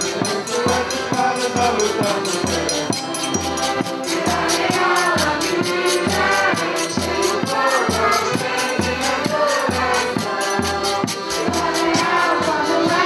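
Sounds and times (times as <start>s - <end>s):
group singing in chorus: 0.0s - 13.0s
rattling percussion: 0.0s - 13.0s.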